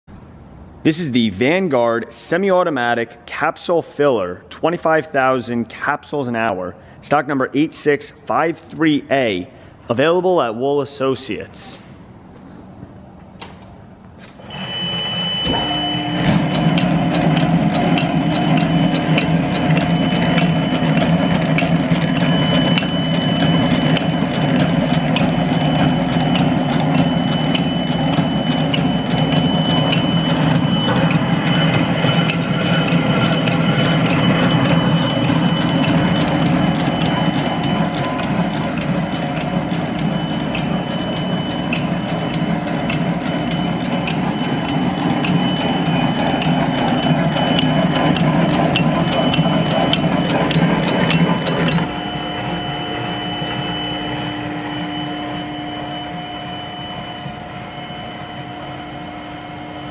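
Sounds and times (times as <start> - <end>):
machine hum: 11.8 - 59.9
high whine: 14.2 - 59.9
regular clicking: 16.2 - 51.9.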